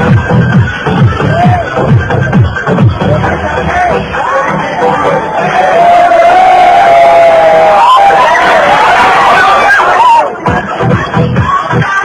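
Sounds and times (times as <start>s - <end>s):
crowd cheering and shouting: 0.7s - 12.0s.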